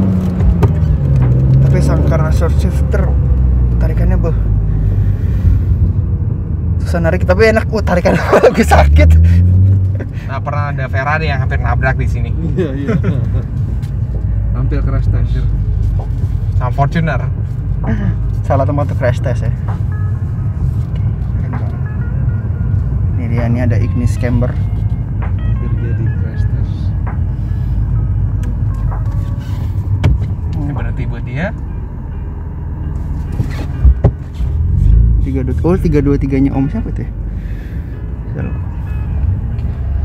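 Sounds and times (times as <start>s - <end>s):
car engine and road noise drone: 0.0s - 40.0s.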